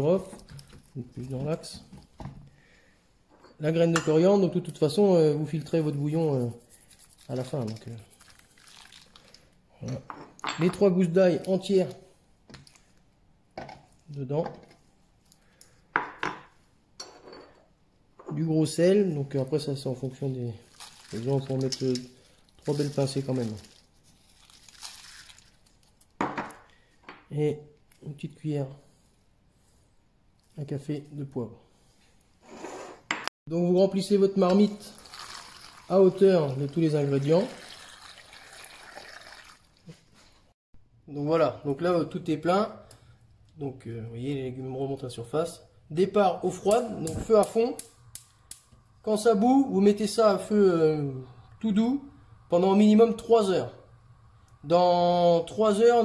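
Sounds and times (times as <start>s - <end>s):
water trickling into a pot: 7.8s - 9.6s, 20.6s - 25.9s, 34.6s - 40.1s
kitchenware clattering: 10.0s - 10.9s.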